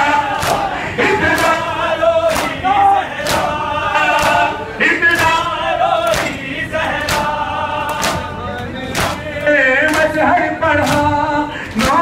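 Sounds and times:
crowd of men chanting: 0:00.0 - 0:12.0
man singing a lament: 0:00.0 - 0:12.0.

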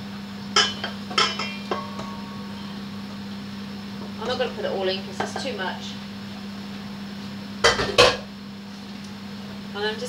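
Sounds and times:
steady low hum: 0:00.0 - 0:10.0
spoon knocking against pan: 0:00.6 - 0:02.3.

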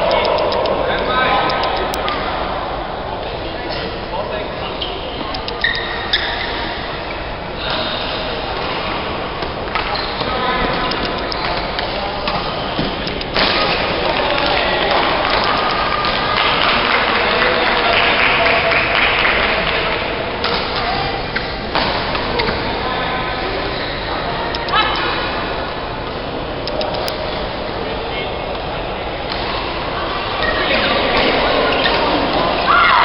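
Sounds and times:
chatter of many voices: 0:00.0 - 0:33.0
racket hitting shuttlecock clicks: 0:10.7 - 0:16.2.

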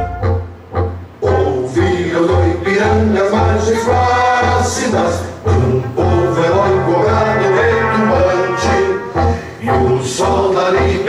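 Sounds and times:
steady bass line: 0:00.0 - 0:11.0
choir singing: 0:01.2 - 0:11.0.

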